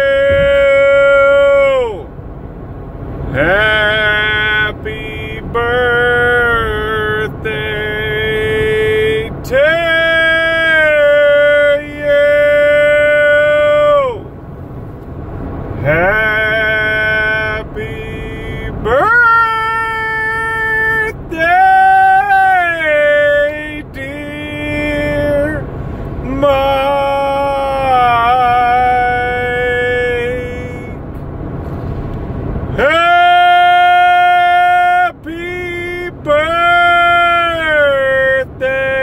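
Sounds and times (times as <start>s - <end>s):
man singing long high notes: 0.0s - 2.1s, 3.3s - 14.3s, 15.8s - 31.0s, 32.8s - 39.0s
car road noise: 0.0s - 39.0s.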